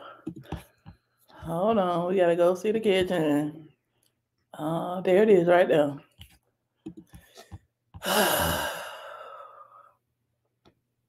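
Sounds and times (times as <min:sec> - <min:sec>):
person sighing: 0:08.0 - 0:09.9.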